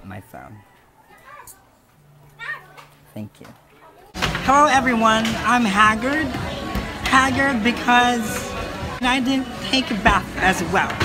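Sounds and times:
children calling: 0:00.6 - 0:03.1, 0:03.7 - 0:11.0.

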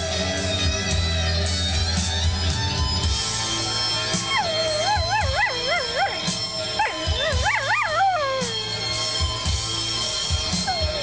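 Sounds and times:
rock music with guitar and drums: 0:00.0 - 0:11.0
dog howling: 0:04.0 - 0:09.3, 0:10.3 - 0:11.0.

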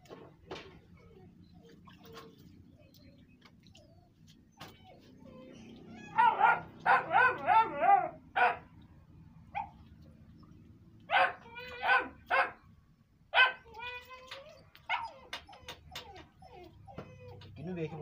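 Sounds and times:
dog barking: 0:06.1 - 0:08.7, 0:09.6 - 0:09.8, 0:11.1 - 0:12.6, 0:13.4 - 0:13.7.

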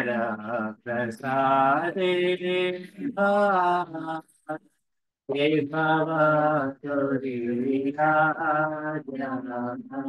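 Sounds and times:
man chanting: 0:00.0 - 0:04.6, 0:05.3 - 0:10.0.

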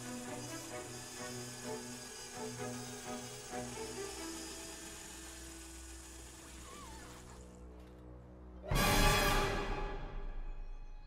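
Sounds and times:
film score drone: 0:00.0 - 0:11.0.

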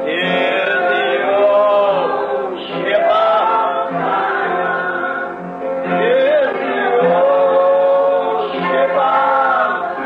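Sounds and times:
group singing a slow hymn: 0:00.0 - 0:10.0.

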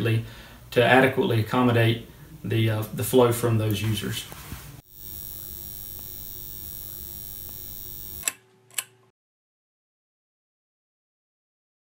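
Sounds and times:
steady electronic hiss: 0:04.8 - 0:08.3
faint hum: 0:04.9 - 0:08.3
sharp clicks: 0:05.1 - 0:08.9.

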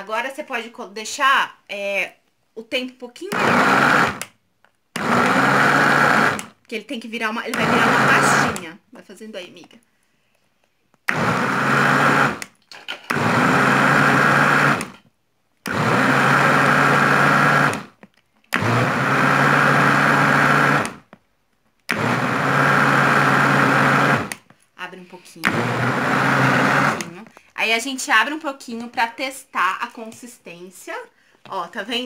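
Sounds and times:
countertop blender pulsing: 0:03.3 - 0:04.3, 0:04.9 - 0:06.6, 0:07.5 - 0:08.7, 0:11.1 - 0:15.0, 0:15.6 - 0:21.1, 0:21.9 - 0:24.4, 0:25.4 - 0:27.3.

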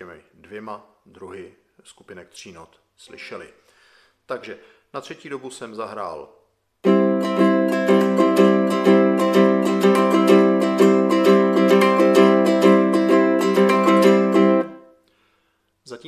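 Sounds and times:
ukulele strumming: 0:06.8 - 0:14.9.

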